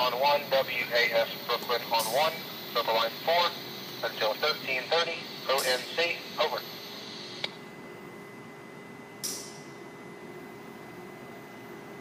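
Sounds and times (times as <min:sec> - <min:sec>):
radio voice transmission: 0:00.0 - 0:07.5
faint steady hum: 0:00.0 - 0:12.0
radio click: 0:05.5 - 0:06.6, 0:07.3 - 0:07.6.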